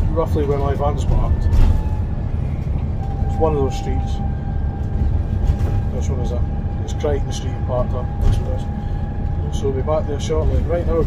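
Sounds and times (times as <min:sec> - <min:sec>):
bus engine and road rumble: 0:00.0 - 0:11.0.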